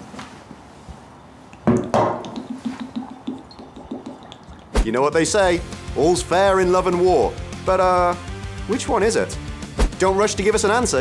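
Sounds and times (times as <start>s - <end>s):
glass bottle knocking onto wooden table: 1.7s - 4.3s
liquid glugging out of bottle: 1.8s - 4.9s.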